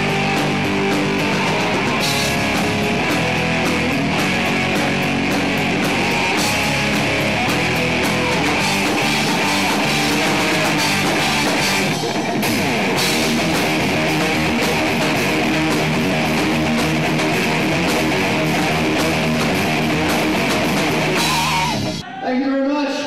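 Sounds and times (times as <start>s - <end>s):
live rock band playing: 0.0s - 22.0s.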